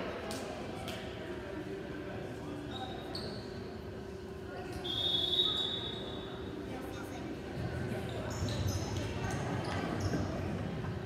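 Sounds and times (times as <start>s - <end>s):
voices chattering in hall: 0.0s - 11.0s
sneakers squeaking on gym floor: 2.7s - 3.6s, 8.0s - 10.5s.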